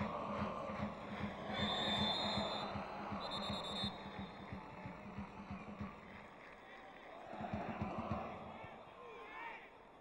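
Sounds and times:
football stadium crowd: 0.0 - 10.0
referee's whistle: 1.6 - 4.2.

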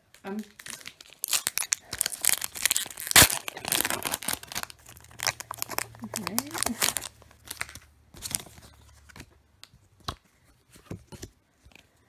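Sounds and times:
foil wrapper rustling: 0.2 - 9.1.

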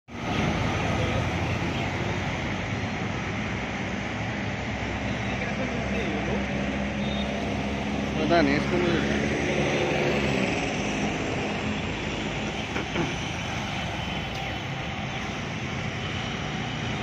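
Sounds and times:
city road traffic: 0.0 - 17.0
bus passing close by: 0.1 - 17.0.

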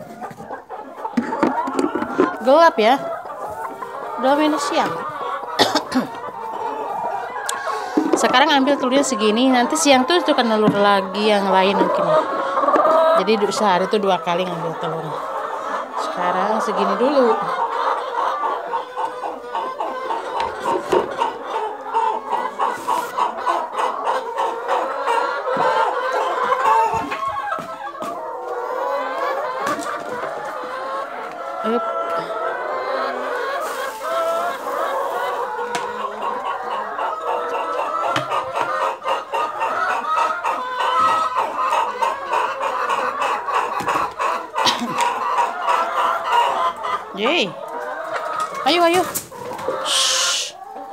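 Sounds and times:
hens clucking: 0.0 - 50.9.

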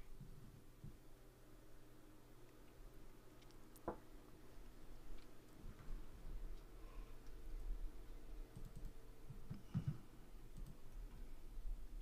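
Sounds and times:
steady low hum: 0.0 - 12.0
faint clicks: 2.4 - 3.9, 8.5 - 9.9, 10.5 - 11.3.

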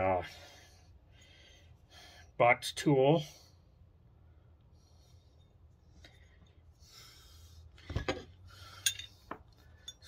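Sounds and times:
metal tools clinking: 8.0 - 10.0
metal tools rubbing: 8.6 - 10.0.

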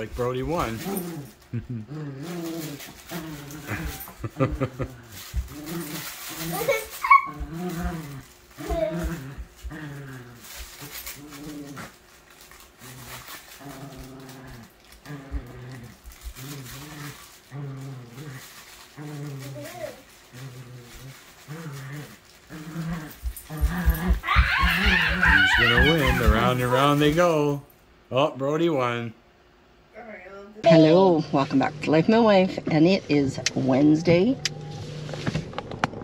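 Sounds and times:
small dog growling: 0.0 - 12.0, 12.8 - 27.2
dog yelp: 6.6 - 7.4, 23.6 - 26.6.

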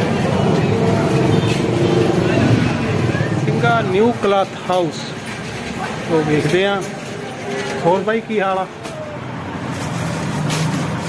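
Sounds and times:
indistinct voices: 0.0 - 9.8.

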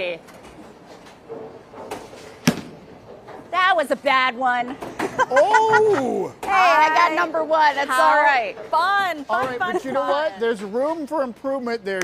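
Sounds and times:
low background hubbub: 0.0 - 12.0
sharp knock: 2.4 - 2.9.

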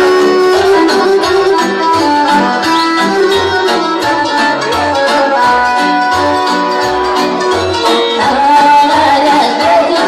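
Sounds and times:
folk band music: 0.0 - 10.0.

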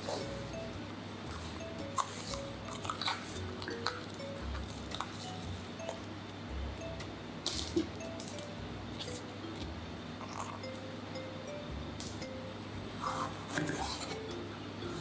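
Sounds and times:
plinking background music: 0.0 - 13.1.

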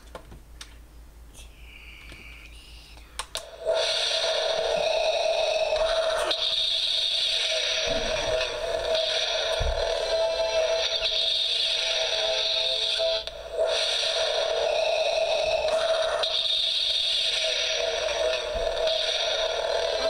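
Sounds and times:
electronic hiss from speaker: 1.3 - 20.0.

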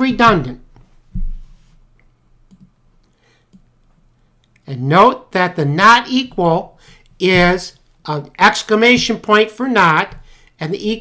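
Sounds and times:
low thump: 1.2 - 1.4
computer mouse clicks: 2.5 - 4.6.

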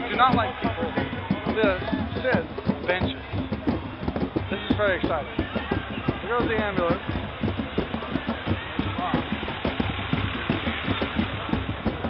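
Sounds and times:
crowd voices: 0.0 - 12.0
street noise: 0.0 - 12.0.

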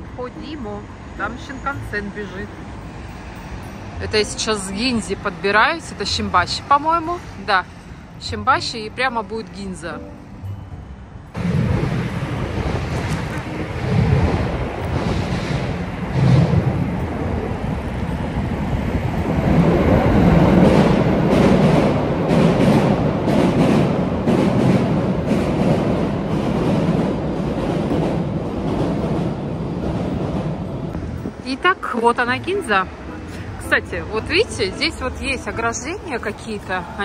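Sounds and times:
city traffic: 0.0 - 37.0
wind buffeting microphone: 11.3 - 34.3
bicycle riding rumble: 11.4 - 22.6
train wheels clacking on bridge: 19.4 - 30.9.

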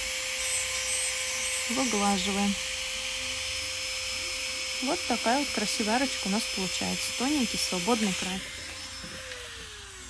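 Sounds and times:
small motor humming: 0.0 - 10.0.

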